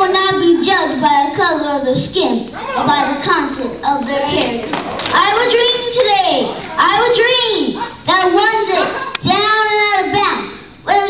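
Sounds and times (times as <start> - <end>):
boy reciting a speech: 0.0 - 11.0.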